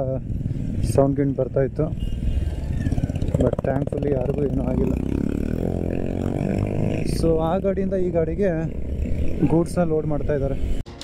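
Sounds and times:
motorcycle engine running: 0:00.0 - 0:10.7.

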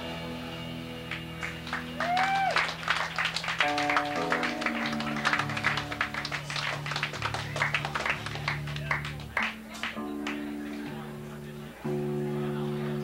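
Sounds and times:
low bass notes: 0:00.0 - 0:02.4, 0:03.8 - 0:13.0
electric guitar: 0:00.0 - 0:13.0.

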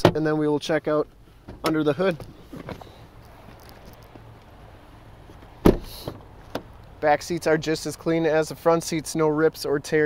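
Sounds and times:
car door shutting thud: 0:05.6 - 0:06.7.

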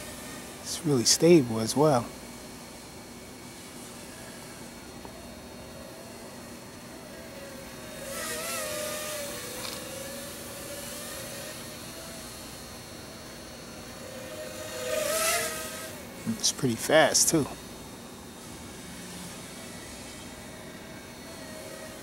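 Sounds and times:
quadcopter motors whining: 0:00.0 - 0:22.0.

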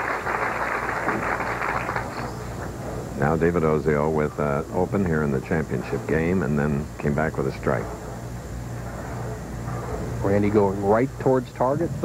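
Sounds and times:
audience applauding: 0:00.0 - 0:02.5.

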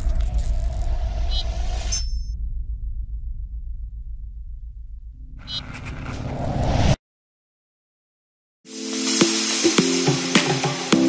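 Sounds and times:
deep steady rumble: 0:00.0 - 0:06.7.

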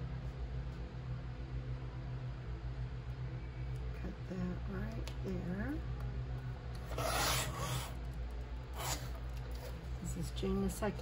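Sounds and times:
paper trimmer slicing paper: 0:06.9 - 0:08.0, 0:08.8 - 0:09.1.

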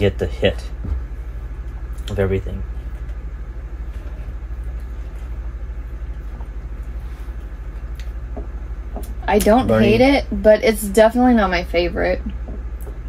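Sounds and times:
low background rumble: 0:00.0 - 0:13.0.

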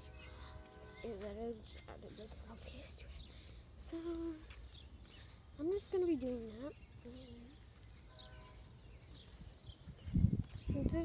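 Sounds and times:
girl's voice: 0:01.0 - 0:04.6, 0:05.5 - 0:07.6, 0:10.6 - 0:11.0.

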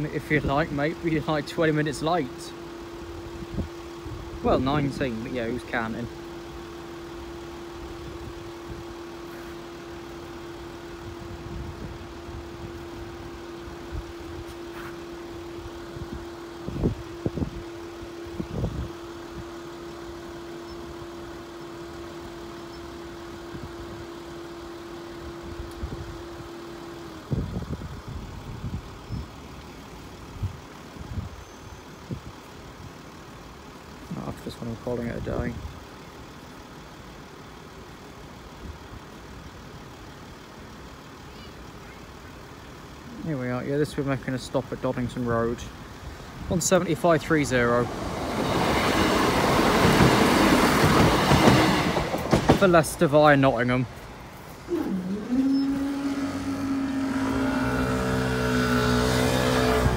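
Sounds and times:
low traffic rumble: 0:00.0 - 0:59.9
vehicle engine idling: 0:00.0 - 0:59.9.

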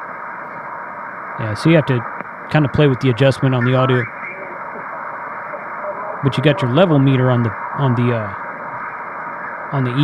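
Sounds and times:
radio static hiss: 0:00.0 - 0:10.0
faint radio voice: 0:01.4 - 0:08.4.

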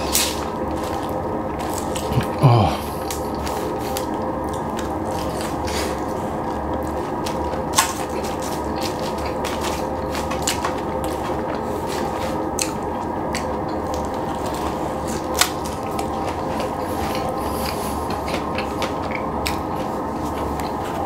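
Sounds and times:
person chewing crunchy food: 0:00.0 - 0:21.0
steady background hum: 0:00.0 - 0:21.0.

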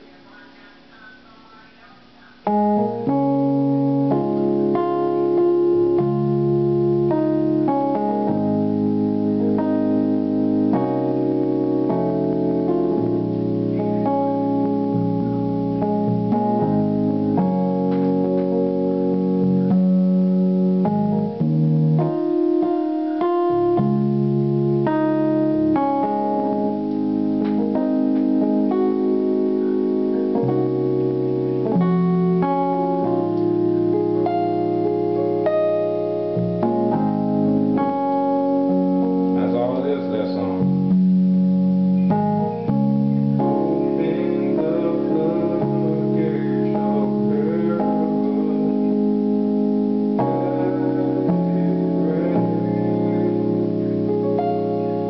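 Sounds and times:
electronic keyboard gospel chords: 0:00.0 - 0:55.0.

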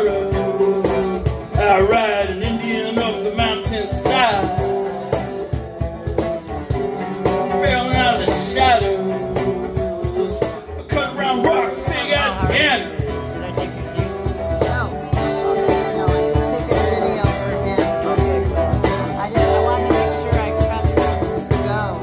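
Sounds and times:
cajon beat: 0:00.0 - 0:22.0
person singing: 0:00.0 - 0:22.0
strummed acoustic guitar: 0:00.0 - 0:22.0.

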